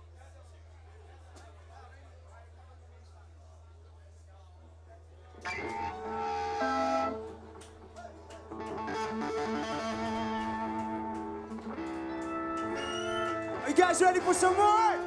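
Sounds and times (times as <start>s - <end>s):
electric guitar chords and notes: 5.4s - 15.0s.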